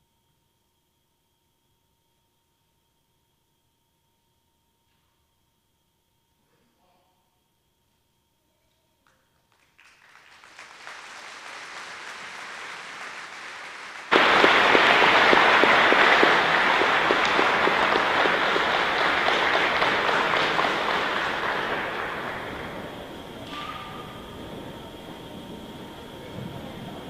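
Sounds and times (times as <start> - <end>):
audience applauding: 9.5 - 25.2.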